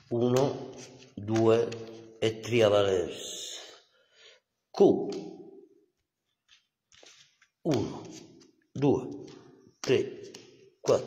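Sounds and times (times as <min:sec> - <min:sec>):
playing cards clicking and sliding: 0:00.0 - 0:02.5, 0:06.2 - 0:11.0
man speaking: 0:00.0 - 0:03.8, 0:04.7 - 0:05.7, 0:07.6 - 0:11.0.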